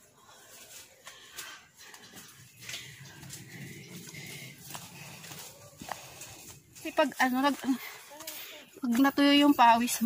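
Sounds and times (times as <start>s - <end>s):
footsteps on dry leaves: 0.0s - 9.8s.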